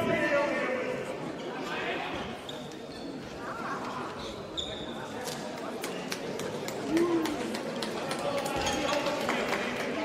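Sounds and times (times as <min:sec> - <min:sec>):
voices echoing in a hall: 0:00.0 - 0:10.0
brief high squeak: 0:04.5 - 0:05.1.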